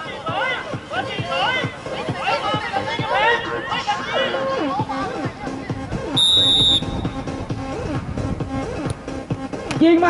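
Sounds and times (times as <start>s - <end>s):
background music: 0.0s - 10.0s
referee's whistle blast: 6.2s - 7.2s.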